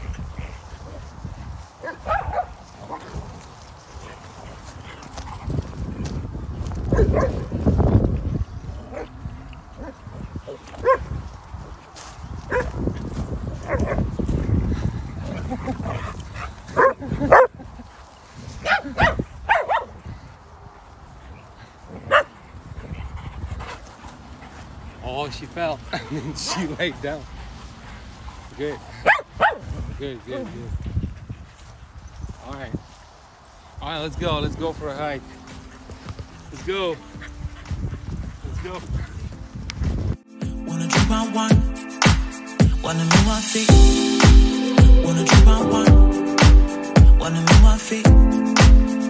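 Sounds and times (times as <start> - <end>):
dogs barking and yelping: 1.8 - 3.2, 6.8 - 7.6, 8.8 - 11.2, 12.5 - 12.8, 13.6 - 14.1, 15.1 - 17.6, 18.6 - 20.0, 22.0 - 22.9, 26.0 - 29.8.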